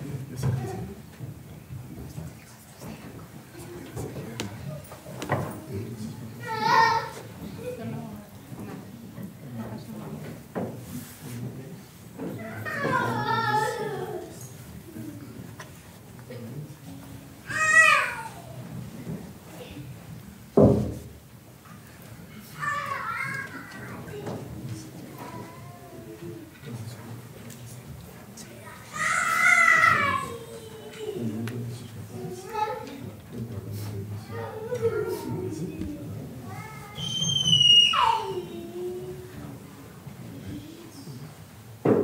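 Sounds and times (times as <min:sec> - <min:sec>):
low room murmur: 0:00.0 - 0:42.0
small child crying: 0:22.6 - 0:23.7, 0:29.0 - 0:31.1
child squealing: 0:29.0 - 0:30.5, 0:36.8 - 0:38.6.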